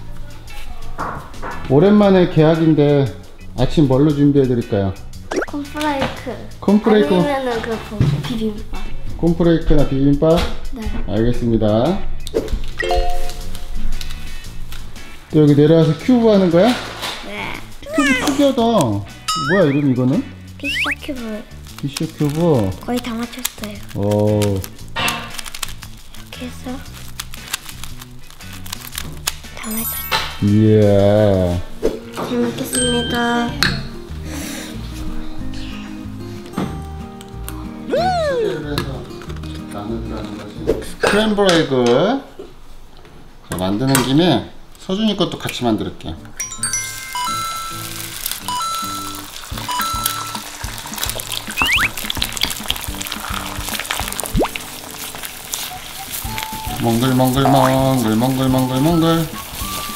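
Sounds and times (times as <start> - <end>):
background music: 0.0 - 41.2, 45.7 - 59.9
eggs sizzling in a frying pan: 17.0 - 29.6, 46.8 - 59.9
short rising whistle-like sounds: 20.7 - 21.0, 51.6 - 51.9
wooden spatula stirring: 50.3 - 58.5
puzzle cube clicking: 51.5 - 52.6.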